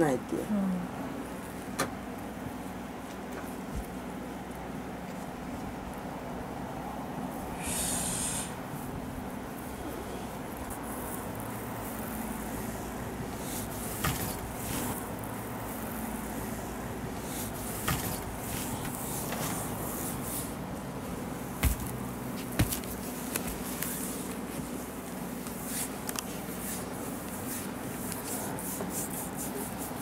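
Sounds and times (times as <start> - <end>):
hands rubbing on skin: 25.5 - 30.0.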